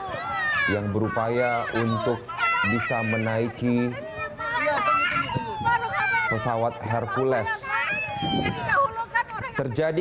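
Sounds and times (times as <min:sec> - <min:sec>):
women and children calling out: 0:00.0 - 0:10.0.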